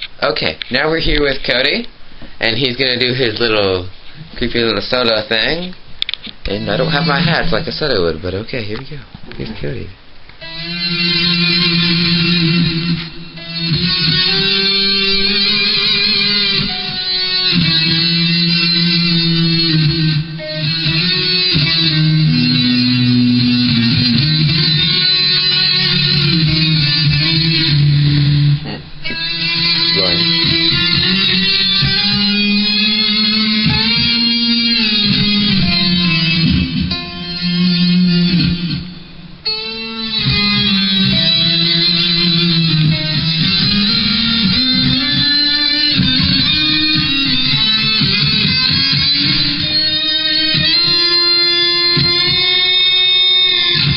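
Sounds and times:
solo electric guitar: 6.0 - 7.9, 10.4 - 53.9.

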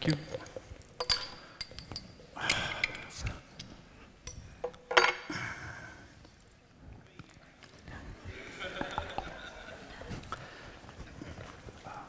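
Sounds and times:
glass bottles clicking and knocking: 0.1 - 3.1, 4.2 - 5.3.

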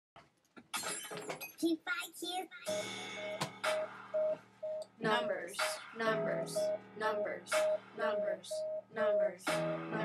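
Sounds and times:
girl's voice: 1.6 - 2.8.

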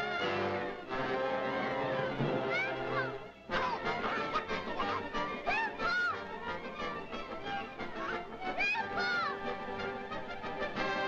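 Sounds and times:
agitated orchestral cartoon music: 0.0 - 11.0.

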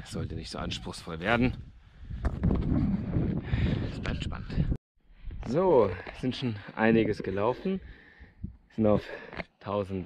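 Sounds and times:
wind buffeting microphone: 0.0 - 5.5, 6.8 - 8.7.

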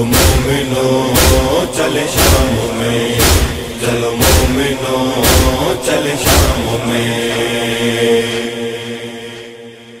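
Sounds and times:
heavy beat: 0.0 - 7.8
person chanting: 0.0 - 10.0.

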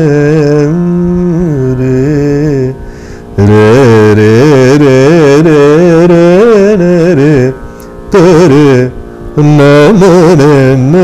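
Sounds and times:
man singing with sliding notes: 0.0 - 11.0.

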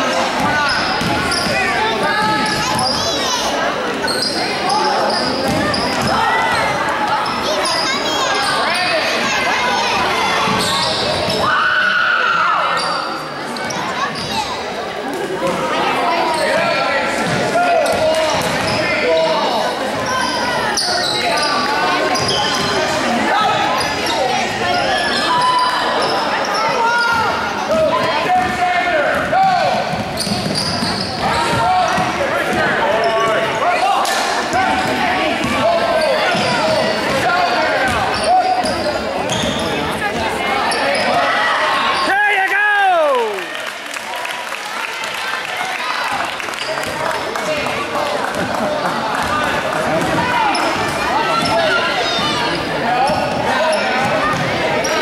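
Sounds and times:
players and spectators shouting: 0.0 - 14.7, 15.4 - 55.0.

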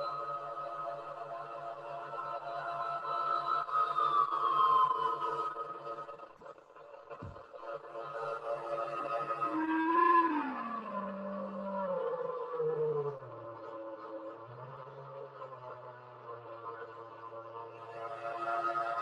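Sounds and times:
falling pitch glides: 9.3 - 15.6.

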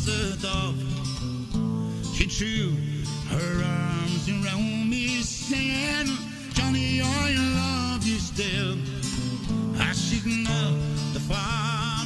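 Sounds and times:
man singing a folk ballad: 0.0 - 12.0
strummed acoustic guitar: 0.0 - 12.0.

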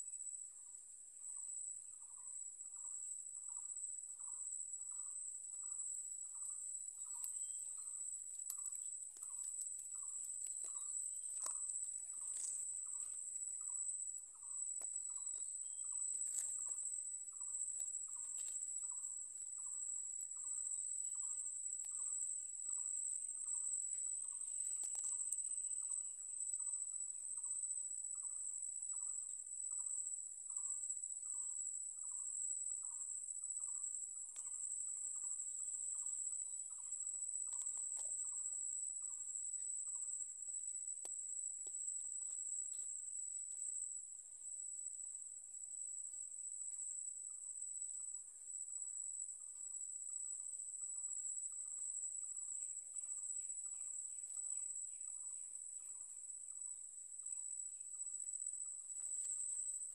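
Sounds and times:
shrill insect chorus: 0.0 - 59.9.

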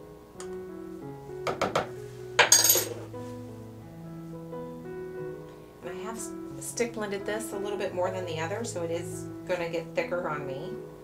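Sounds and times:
soft background music: 0.0 - 11.0
metal spoon clattering on stone: 2.4 - 3.0.

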